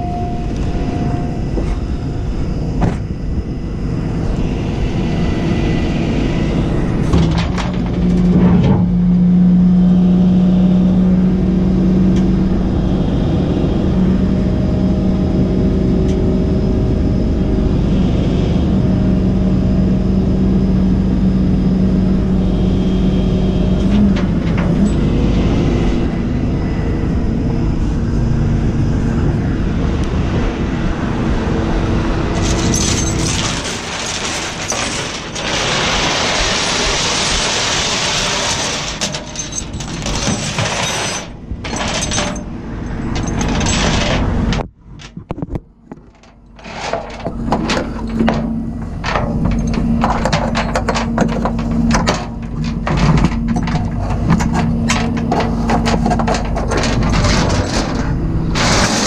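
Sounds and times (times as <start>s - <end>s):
diesel engine running: 0.0s - 45.0s, 45.8s - 59.0s.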